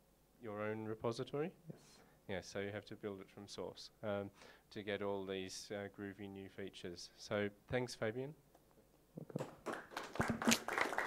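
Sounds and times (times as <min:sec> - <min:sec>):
audience clapping: 0:09.4 - 0:11.0.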